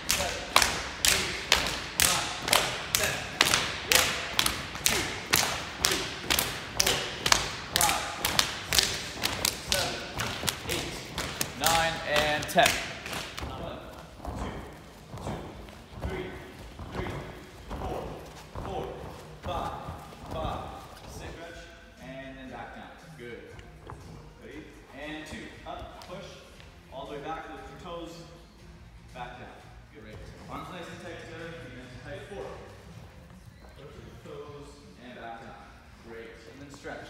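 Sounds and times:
voices calling in a hall: 0:00.0 - 0:28.5.

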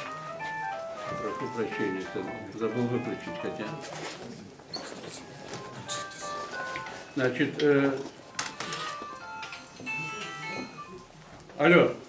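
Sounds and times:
electronic phone ringtone melody: 0:05.3 - 0:11.2.

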